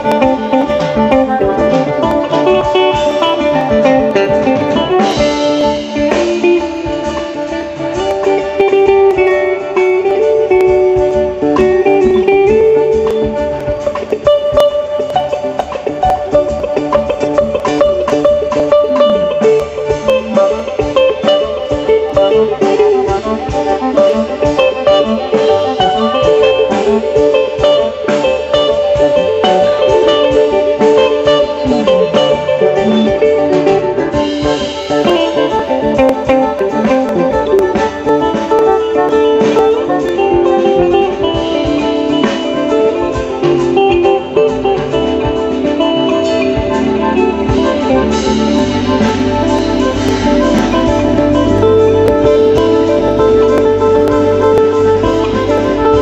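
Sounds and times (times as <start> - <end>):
bluegrass band playing: 0.0 - 56.0
drum kit steady beat: 0.0 - 56.0
fiddle: 0.0 - 56.0.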